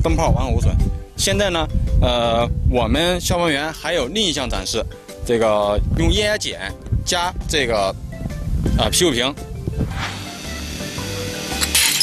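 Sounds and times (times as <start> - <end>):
music with bass beat: 6.7 - 11.6
hissing burst of noise: 9.8 - 12.0.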